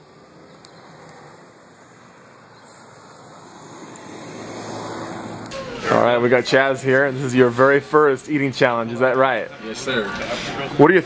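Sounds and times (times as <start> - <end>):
road traffic hiss: 0.0 - 9.0, 10.0 - 10.9.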